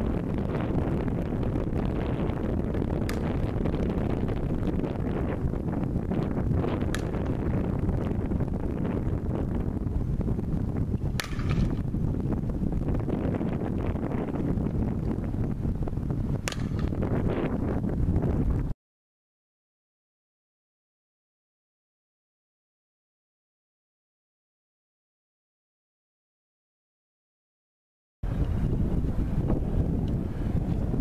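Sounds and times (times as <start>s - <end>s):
steady low rumble: 0.0s - 18.8s, 28.2s - 31.0s
wind buffeting microphone: 0.0s - 18.8s, 28.2s - 31.0s
sharp cracks: 2.9s - 3.9s, 6.8s - 7.6s, 11.0s - 11.9s, 16.4s - 17.2s.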